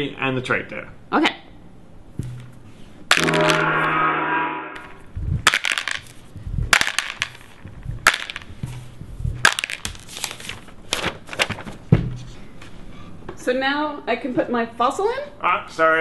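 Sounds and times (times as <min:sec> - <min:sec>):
dull thumps: 0:11.5 - 0:12.4.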